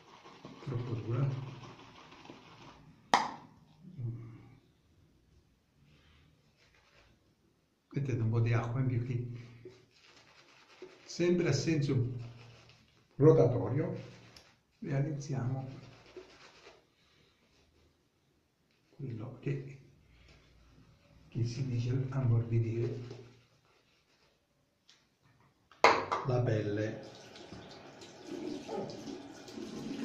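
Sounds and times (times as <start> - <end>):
shaving brush swishing through lather: 0.0 - 2.8, 6.4 - 7.2, 9.7 - 16.9, 22.2 - 24.4.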